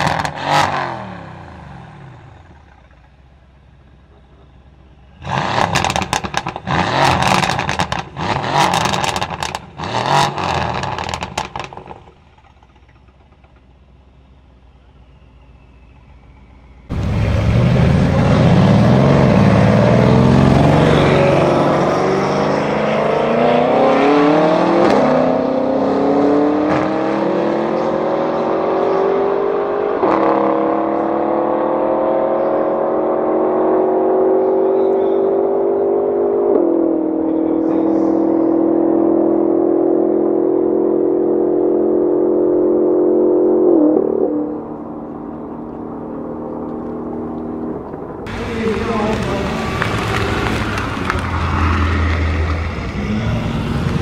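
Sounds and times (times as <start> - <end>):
car engines accelerating hard: 0.0 - 3.2, 5.0 - 13.6, 15.1 - 54.0.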